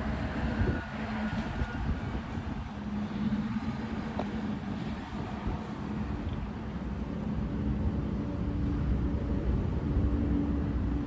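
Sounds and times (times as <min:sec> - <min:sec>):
engine rumble: 0:00.0 - 0:11.0.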